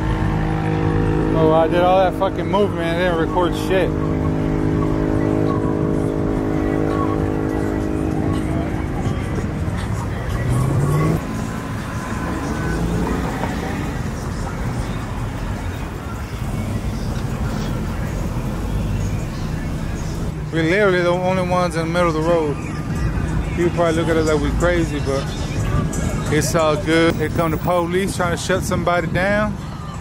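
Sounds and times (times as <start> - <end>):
car engine revving: 0.0 - 27.8
car engines passing: 0.0 - 30.0
crowd voices: 1.0 - 30.0
music: 1.5 - 30.0.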